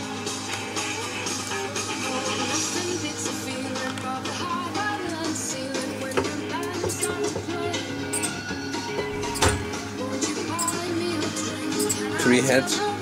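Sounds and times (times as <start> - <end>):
rock music from tape recorder: 0.0 - 13.0.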